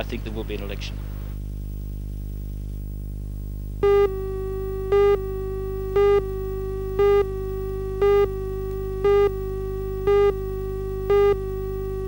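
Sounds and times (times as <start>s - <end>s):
low hum: 0.0s - 12.0s
loud beeps: 3.8s - 6.4s, 7.0s - 9.4s, 10.0s - 12.0s
steady pitched tone: 3.8s - 12.0s.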